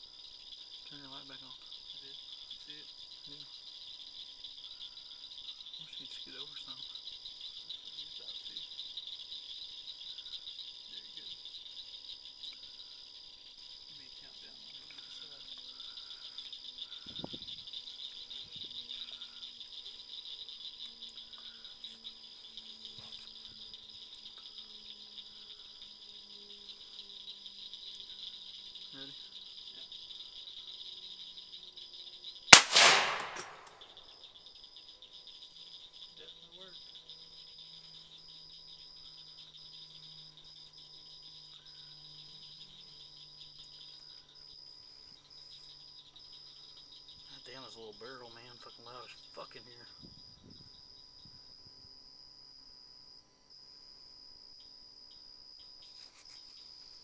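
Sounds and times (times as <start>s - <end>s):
crickets chirring: 0.0s - 57.0s
loud rifle shot: 32.6s - 34.0s.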